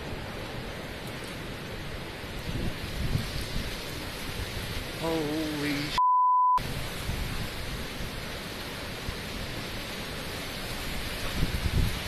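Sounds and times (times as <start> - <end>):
rain: 0.0 - 6.0, 6.6 - 12.0
tornado wind: 0.0 - 6.0, 6.6 - 12.0.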